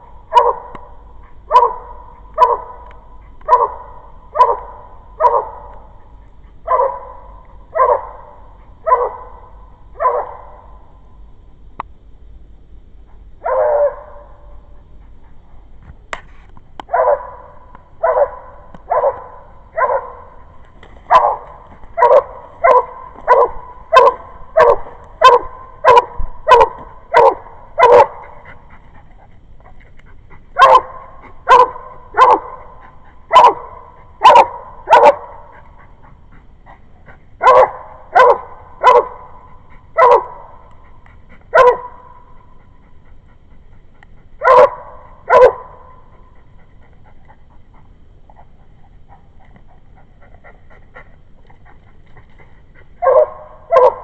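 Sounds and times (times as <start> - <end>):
dog barking loudly: 0.3 - 0.8, 1.4 - 2.8, 3.5 - 5.8, 6.6 - 9.4, 10.0 - 10.6, 13.4 - 14.2, 16.9 - 20.3, 21.1 - 28.3, 30.6 - 32.7, 33.3 - 35.5, 37.4 - 39.3, 40.0 - 40.6, 41.5 - 42.1, 44.4 - 45.8, 53.0 - 54.0.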